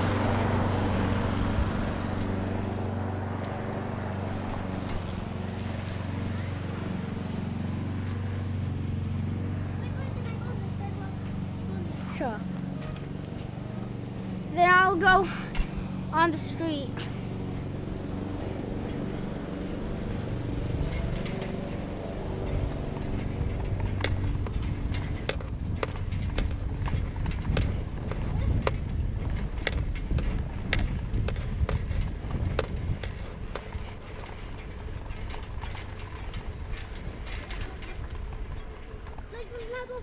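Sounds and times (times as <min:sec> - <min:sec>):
wind rumble on microphone: 0:00.0 - 0:14.5, 0:16.9 - 0:40.0
bicycle tyres rolling on asphalt: 0:00.0 - 0:40.0
wind on microphone: 0:17.4 - 0:34.0.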